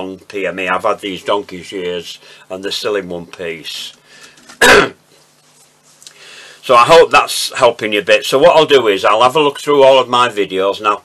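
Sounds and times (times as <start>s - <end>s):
person coughing: 4.5s - 5.0s.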